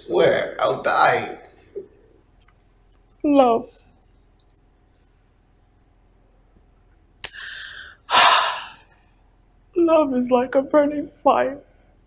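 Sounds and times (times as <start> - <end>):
woman gasping breaths: 7.3 - 8.8.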